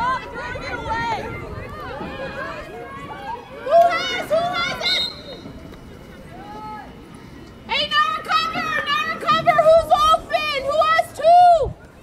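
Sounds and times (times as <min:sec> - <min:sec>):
girls shouting: 0:00.0 - 0:05.3
faint outdoor field noise: 0:00.0 - 0:12.0.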